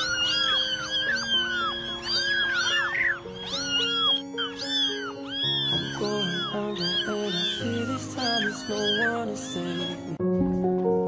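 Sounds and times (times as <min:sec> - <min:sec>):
kittens mewing: 0:00.0 - 0:10.2
background music of held notes: 0:00.0 - 0:11.0.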